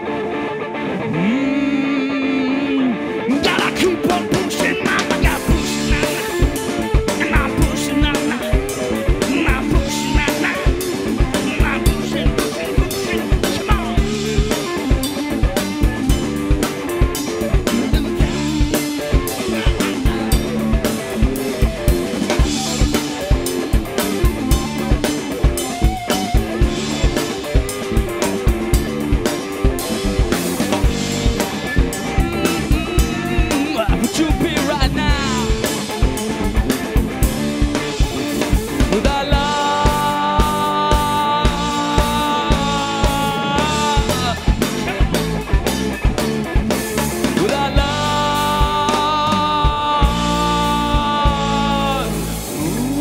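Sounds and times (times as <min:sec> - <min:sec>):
electric guitar riffing: 0:00.0 - 0:53.0
bass line: 0:01.0 - 0:53.0
drum kit steady beat: 0:03.4 - 0:53.0.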